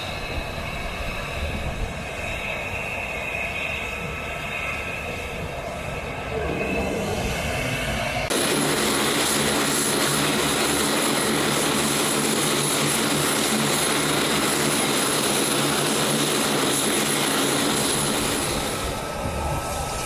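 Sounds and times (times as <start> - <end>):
high turbine whine: 0.0 - 20.0
propeller drone: 0.0 - 20.0.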